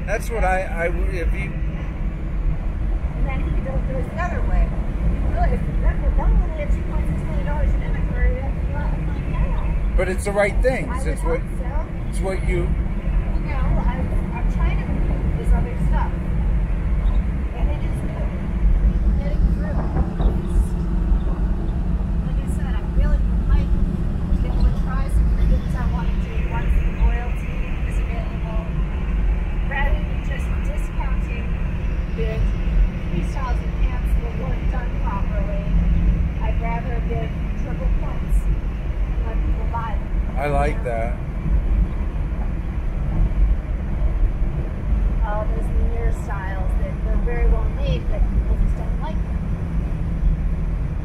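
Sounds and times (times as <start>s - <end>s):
car engine and road noise: 0.0s - 51.0s.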